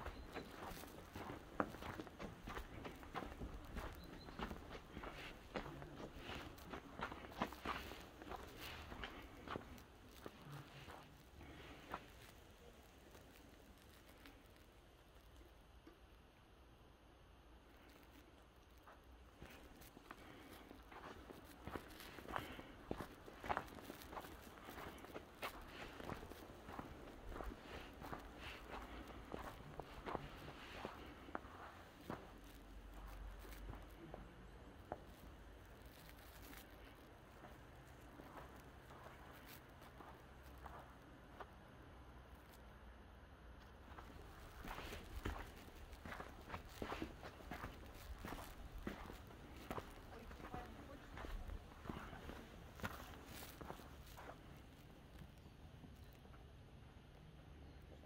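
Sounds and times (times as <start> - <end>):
footsteps on snow: 0.0 - 14.4, 18.9 - 41.5, 43.8 - 54.8.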